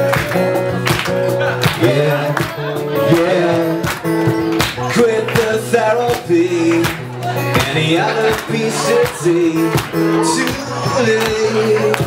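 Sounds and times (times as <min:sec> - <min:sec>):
acoustic guitar strummed: 0:00.0 - 0:12.0
men singing long notes: 0:01.8 - 0:04.1, 0:04.8 - 0:12.0.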